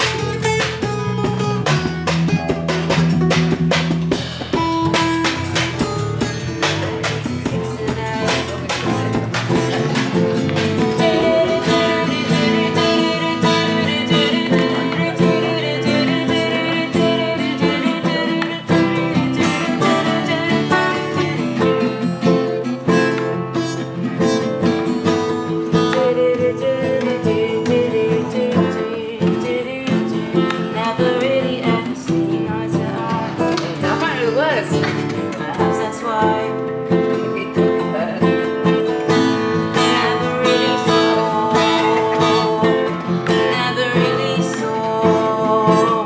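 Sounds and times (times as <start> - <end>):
live rock band playing: 0.0 - 29.2, 29.9 - 46.0
electric guitar: 0.0 - 46.0.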